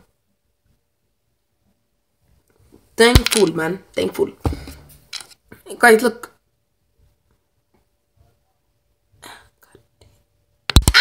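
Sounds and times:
faint breathy whisper: 0:08.4 - 0:10.2.

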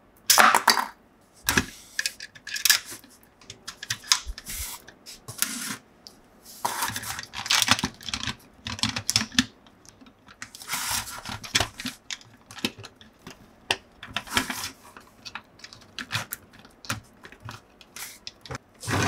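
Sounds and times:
plastic toy clicking and scraping: 0:01.5 - 0:05.8, 0:06.6 - 0:19.0.

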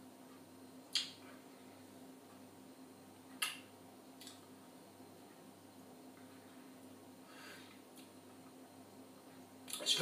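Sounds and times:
low room tone hum: 0:00.0 - 0:10.0.

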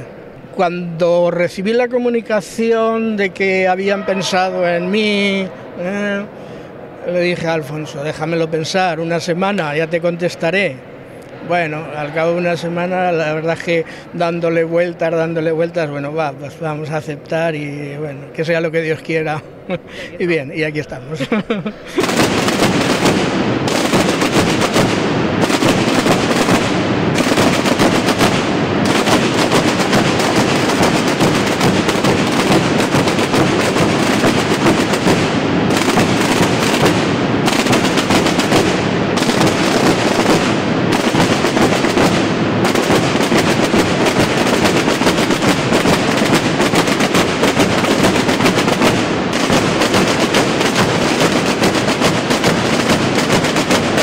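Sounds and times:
snare drums beaten with sticks: 0:22.0 - 0:54.0.

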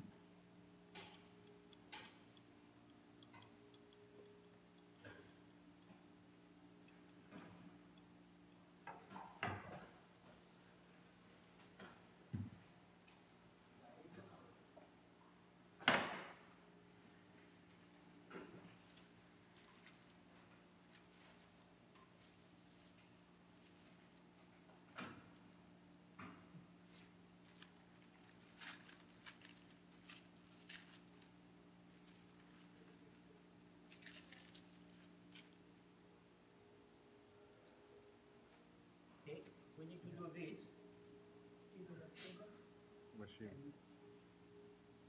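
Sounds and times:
faint room hum: 0:00.0 - 0:45.0.

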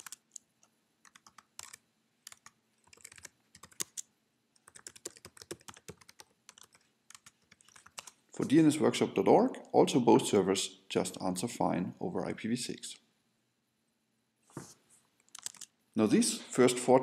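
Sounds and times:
typing on computer keyboard: 0:00.0 - 0:08.2, 0:15.3 - 0:15.7.

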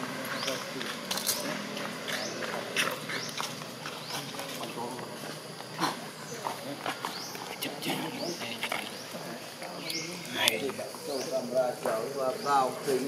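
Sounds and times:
low continuous murmur: 0:00.0 - 0:13.0.

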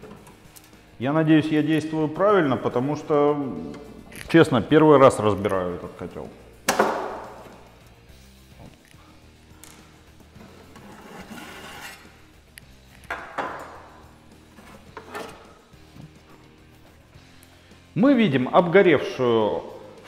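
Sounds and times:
soft background music: 0:00.0 - 0:20.0
sheet metal knocks and scrapes: 0:13.1 - 0:15.6.

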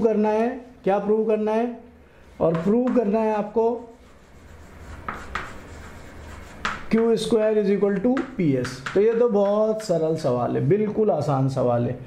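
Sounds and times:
chalk scratching on blackboard: 0:02.3 - 0:07.4.

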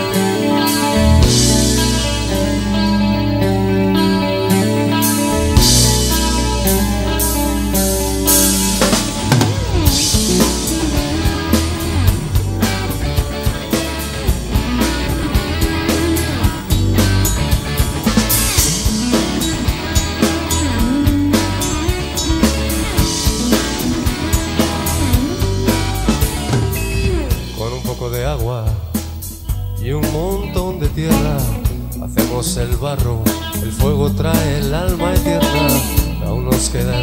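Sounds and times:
bass: 0:00.0 - 0:37.0
drum kit beats: 0:00.0 - 0:37.0
electric guitars: 0:00.0 - 0:37.0
keyboards: 0:00.0 - 0:37.0.

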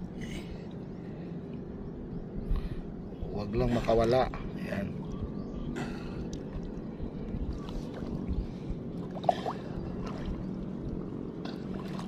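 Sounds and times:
faint water splashes: 0:05.0 - 0:12.0
seawater sloshing and trickling: 0:06.0 - 0:12.0.

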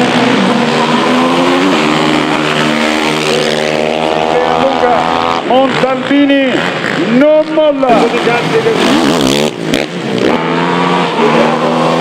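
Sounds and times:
quad bike engines droning: 0:00.0 - 0:12.0.

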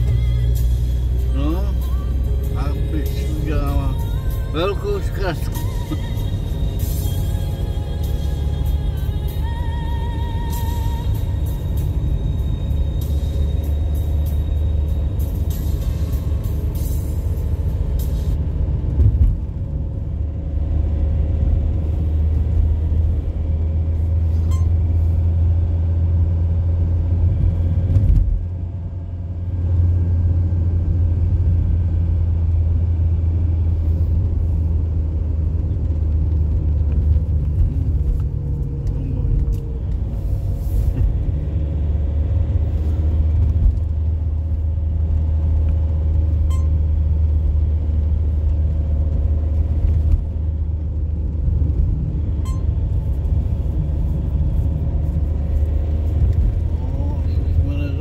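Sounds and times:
car rumble from inside: 0:00.0 - 0:58.0.

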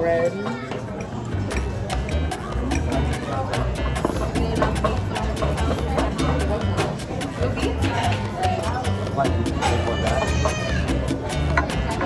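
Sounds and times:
music with steady beat and bass: 0:00.9 - 0:12.0.

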